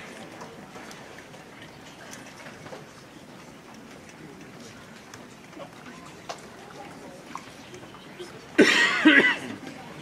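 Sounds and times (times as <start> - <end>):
faint audience room noise: 0.0 - 10.0
loud harsh cough: 8.6 - 9.5.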